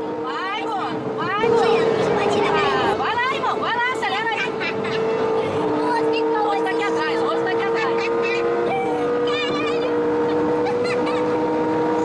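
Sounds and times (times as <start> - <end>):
car engine drone: 0.0 - 12.0.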